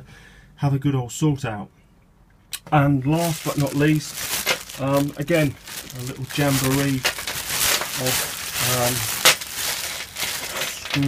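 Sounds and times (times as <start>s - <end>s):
plastic bag crinkling: 3.2s - 11.0s.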